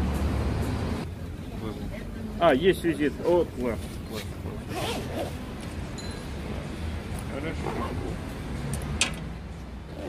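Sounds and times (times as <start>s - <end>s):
zipper rasping: 4.7s - 5.4s, 7.6s - 8.2s.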